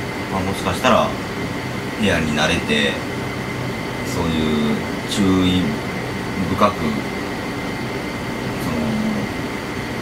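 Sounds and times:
faint electrical whine: 0.0s - 10.0s
low voice-like hum: 0.2s - 10.0s.

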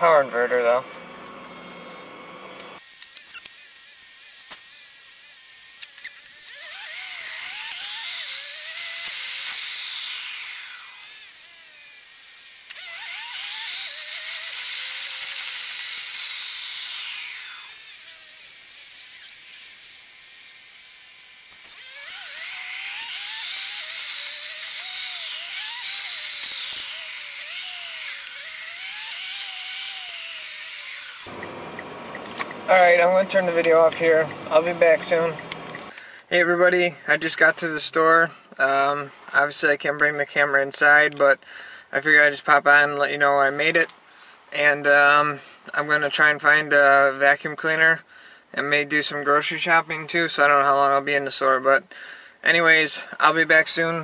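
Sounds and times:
sped-up car engine whine: 0.1s - 2.8s, 30.8s - 35.9s.

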